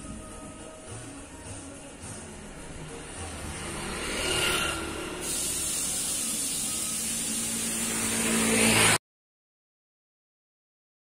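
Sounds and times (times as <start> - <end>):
street traffic: 1.8 - 9.0
motor vehicle running: 2.4 - 9.0.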